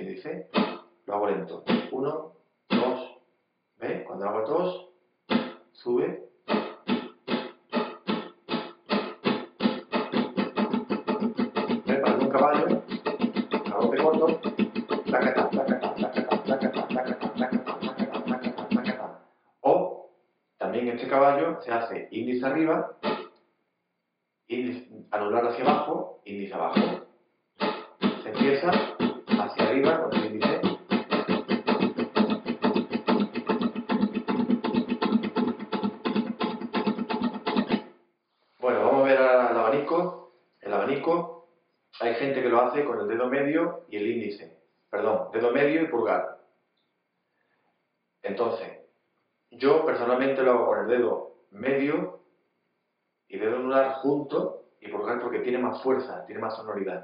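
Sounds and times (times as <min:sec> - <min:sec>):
flamenco guitar strumming: 0:00.5 - 0:00.8, 0:01.6 - 0:02.0, 0:02.7 - 0:03.0, 0:05.3 - 0:05.6, 0:06.5 - 0:19.1, 0:23.0 - 0:23.3, 0:25.6 - 0:25.9, 0:26.7 - 0:27.0, 0:27.6 - 0:38.0.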